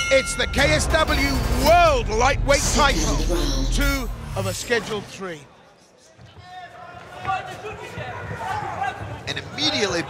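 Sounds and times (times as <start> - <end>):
arena noise: 0.0 - 10.0.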